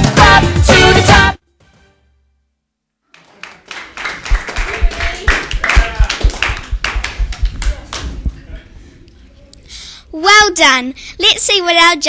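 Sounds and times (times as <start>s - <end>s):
hand clapping: 3.1s - 8.1s.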